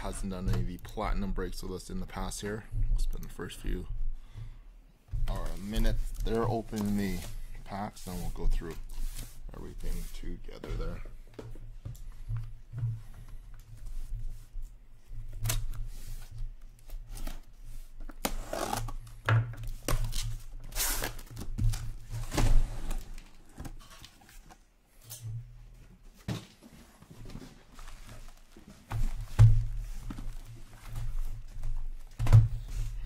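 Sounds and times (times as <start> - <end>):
tape and cardboard tearing: 18.1 - 19.1, 19.9 - 21.5.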